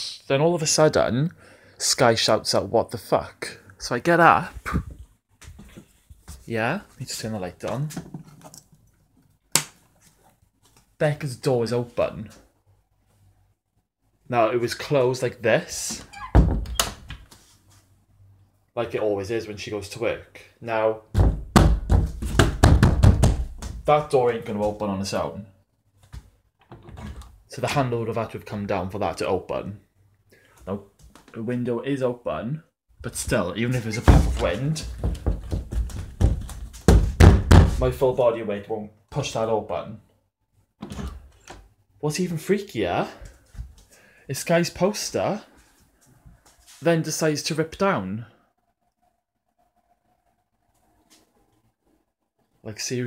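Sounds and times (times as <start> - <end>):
door thudding shut: 16.2 - 17.2, 21.2 - 23.7, 34.0 - 37.8.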